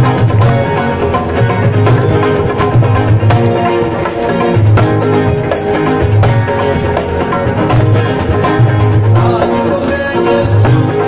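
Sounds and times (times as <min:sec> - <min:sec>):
live band worship song: 0:00.0 - 0:11.0.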